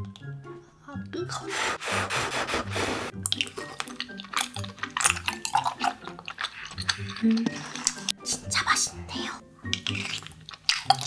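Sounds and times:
soft background music: 0:00.0 - 0:11.0
person blowing on food: 0:01.4 - 0:03.2
wet chewing and mouth clicks: 0:03.1 - 0:08.2, 0:09.6 - 0:11.0.

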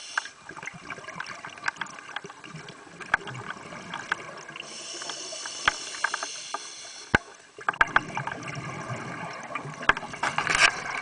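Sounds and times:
diver breathing through regulator: 0:04.6 - 0:07.2.

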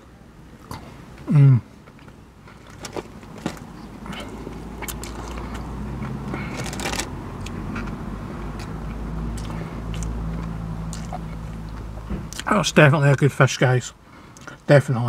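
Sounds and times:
man chewing with wet mouth clicks: 0:00.6 - 0:06.6, 0:07.4 - 0:12.5.

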